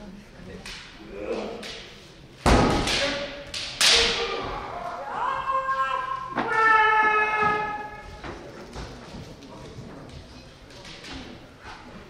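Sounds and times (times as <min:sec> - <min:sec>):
martial arts shouts: 0:01.0 - 0:01.7, 0:03.0 - 0:08.0.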